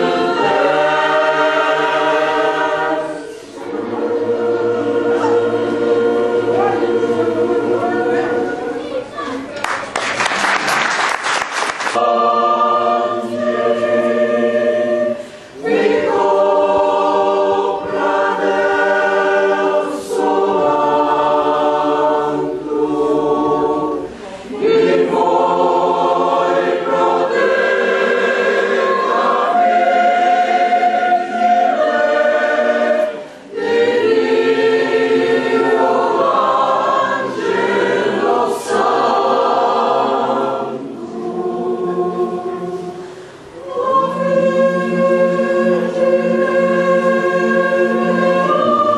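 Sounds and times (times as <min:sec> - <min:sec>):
choir singing: 0:00.0 - 0:09.4, 0:11.7 - 0:48.9
applause: 0:09.6 - 0:12.0.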